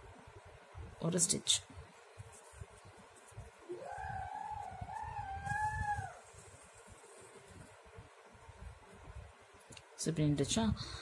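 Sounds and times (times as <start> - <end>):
rooster crowing: 3.7 - 6.3.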